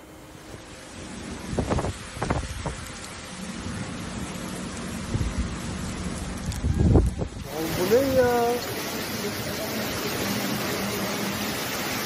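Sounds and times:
heavy rain: 0.0 - 12.0
wind gusts buffeting microphone: 1.2 - 8.3.

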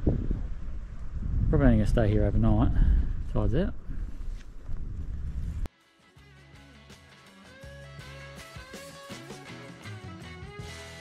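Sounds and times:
wind buffeting microphone: 0.0 - 5.7
plucked guitar tune: 5.8 - 11.0.

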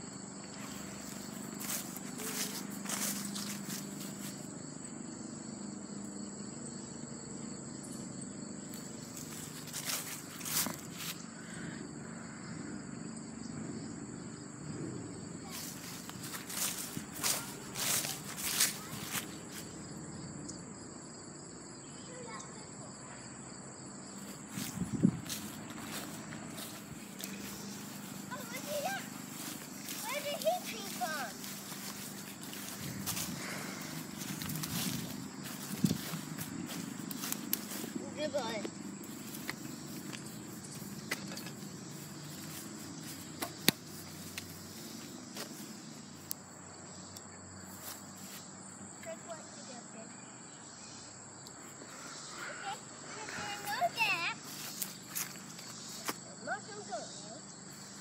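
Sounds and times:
high insect drone: 0.0 - 58.0
faint indistinct voices: 15.4 - 19.3.

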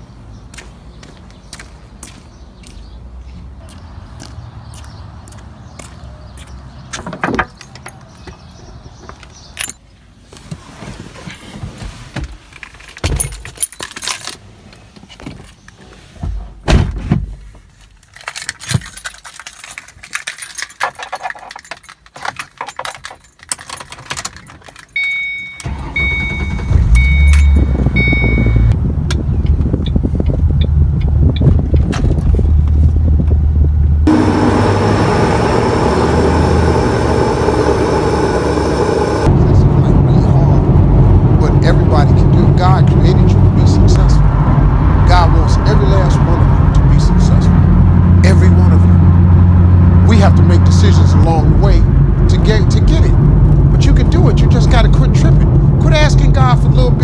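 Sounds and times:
road noise: 0.0 - 57.0
keys jangling: 9.6 - 9.8, 12.6 - 14.4, 18.0 - 25.6
dashboard chime beeping: 25.0 - 28.7
car engine: 25.6 - 57.0.

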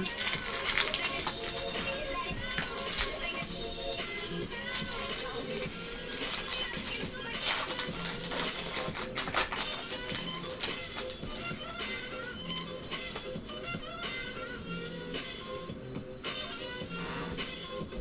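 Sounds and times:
foil wrapper crinkling and tearing: 0.0 - 13.2
background music: 0.0 - 18.0.

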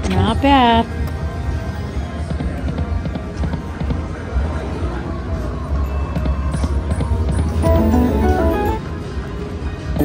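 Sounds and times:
slot machine game music: 7.5 - 9.2
low casino rumble: 7.5 - 10.0.

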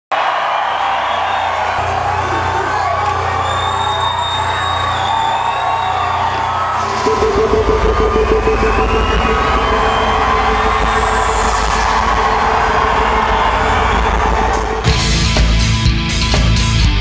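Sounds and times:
crowd cheering and yelling: 0.1 - 17.0
loud music in an arena: 0.1 - 17.0
deep pulsing low sound: 6.8 - 15.6.

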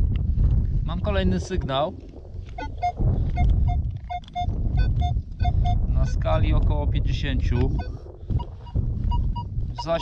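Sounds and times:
metal detector beeps: 2.6 - 6.3, 7.5 - 10.0.

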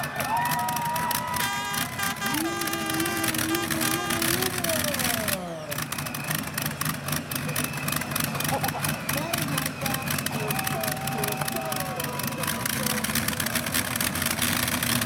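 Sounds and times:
exhaust crackle: 0.0 - 15.0
tractor engine idling: 0.0 - 15.0.

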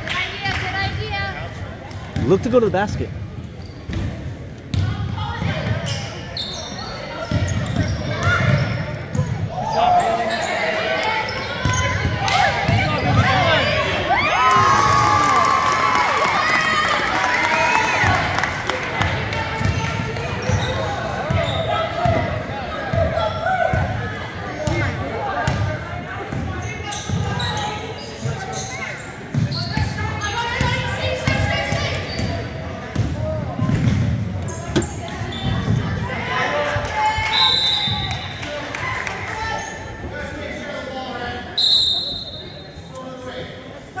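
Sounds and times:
voices echoing in a gym: 0.0 - 44.0
referee's whistle blasts: 37.3 - 38.3, 41.6 - 42.7.

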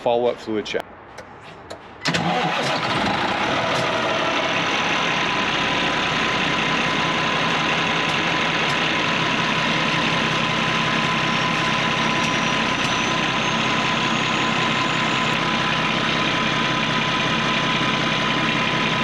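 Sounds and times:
diesel engine idling: 2.0 - 19.0.

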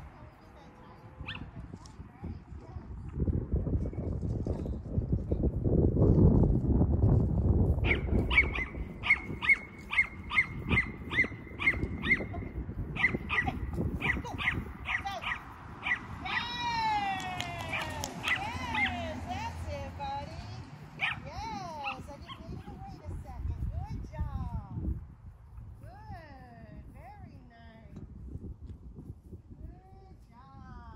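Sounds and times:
dog's high sliding calls: 7.8 - 12.3
small dog yapping: 7.8 - 12.3, 13.0 - 16.5.

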